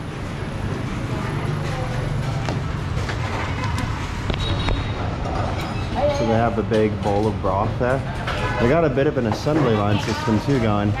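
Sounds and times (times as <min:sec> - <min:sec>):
street traffic engine drone: 0:00.0 - 0:11.0.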